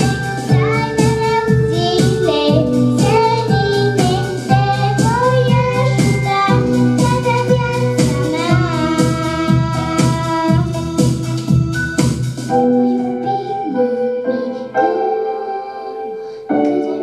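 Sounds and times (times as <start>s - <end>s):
girl singing into a microphone: 0.0s - 11.9s, 12.5s - 17.0s
instrumental accompaniment with beat: 0.0s - 13.8s.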